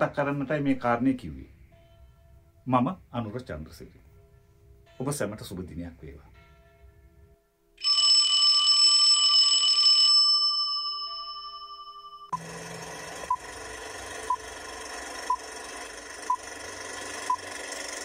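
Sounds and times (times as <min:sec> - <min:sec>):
film projector crackle: 0:12.4 - 0:18.0.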